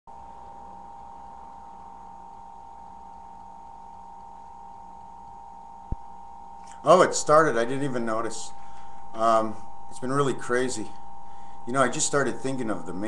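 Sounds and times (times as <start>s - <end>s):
electrical hum: 0.1s - 13.0s
high steady whine: 0.1s - 13.0s.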